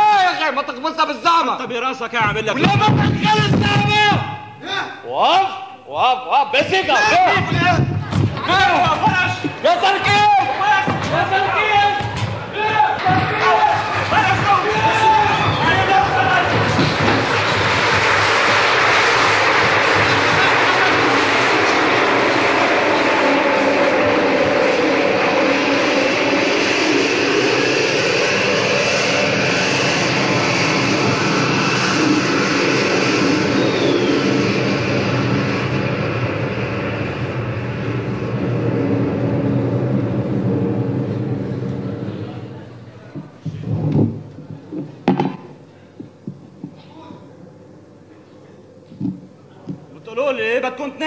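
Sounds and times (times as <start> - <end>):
aircraft engine roar overhead: 0.0 - 51.0.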